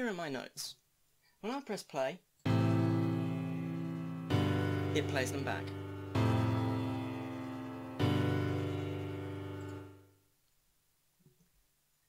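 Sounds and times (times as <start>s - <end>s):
piano chords: 2.5s - 10.2s.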